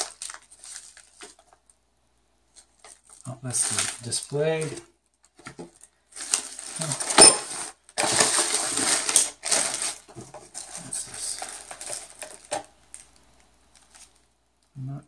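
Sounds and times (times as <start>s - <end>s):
plastic bags crinkling: 0.0s - 1.8s, 2.5s - 14.3s.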